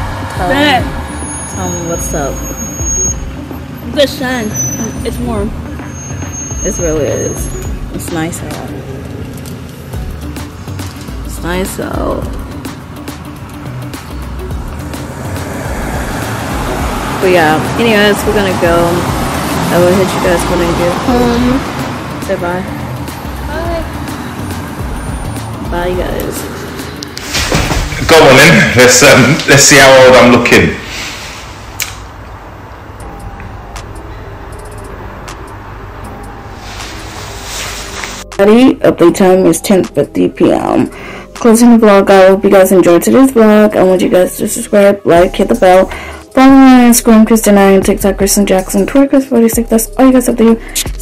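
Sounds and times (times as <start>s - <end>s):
music playing: 0.0s - 51.0s
road traffic rumble: 0.0s - 51.0s.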